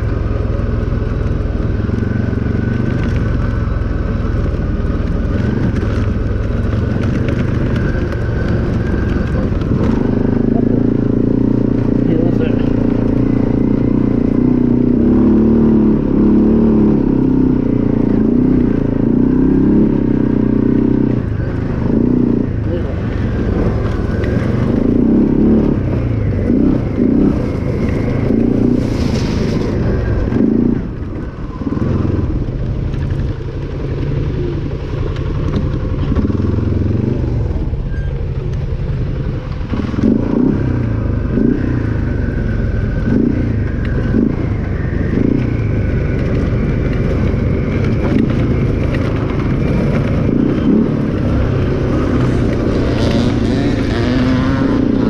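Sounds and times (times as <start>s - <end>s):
quad bike engine running: 0.0s - 55.0s.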